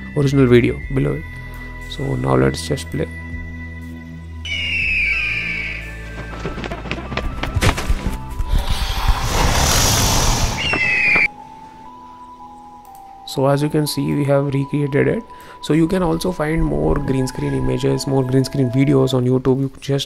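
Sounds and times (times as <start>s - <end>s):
run of thuds: 5.0s - 9.1s.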